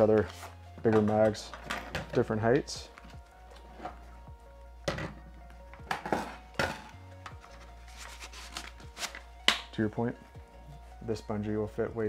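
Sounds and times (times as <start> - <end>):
quiet background music: 0.0 - 12.0.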